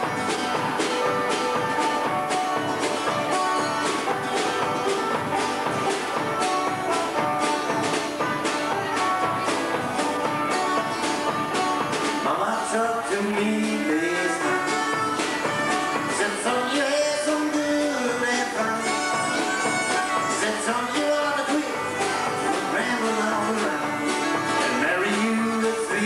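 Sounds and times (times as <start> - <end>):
country band playing: 0.0 - 26.0.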